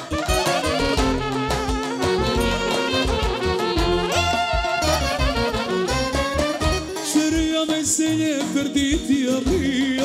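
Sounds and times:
band playing live: 0.0 - 10.0
steady drum beat: 0.0 - 10.0.

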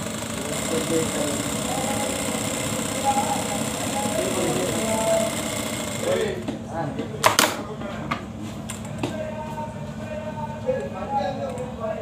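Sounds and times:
sewing machine stitching: 0.0 - 6.3.

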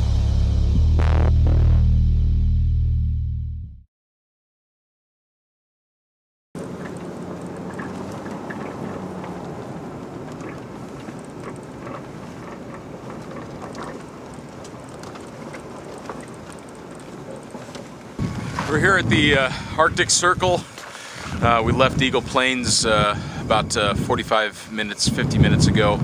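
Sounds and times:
small ticks and rattles: 6.6 - 18.2
road and engine noise: 6.6 - 26.0.

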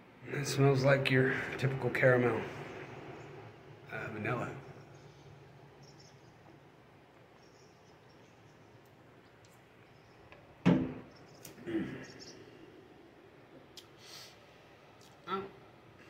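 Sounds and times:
loud knock: 10.7 - 11.0.

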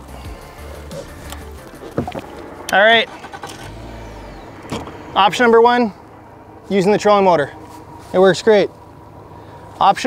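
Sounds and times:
outboard motor running: 0.0 - 10.0.

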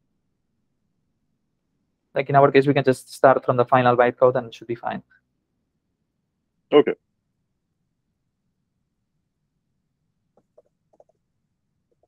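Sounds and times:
faint keyboard keystrokes: 10.4 - 11.2.

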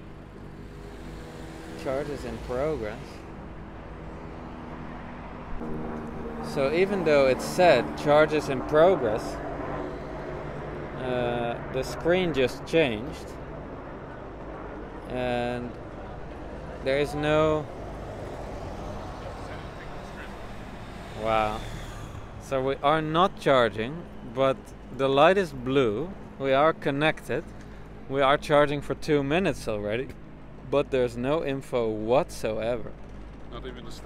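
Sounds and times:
stronger steady hum: 0.0 - 28.2
city street traffic: 0.0 - 34.0
vehicle engine humming: 0.0 - 34.0.

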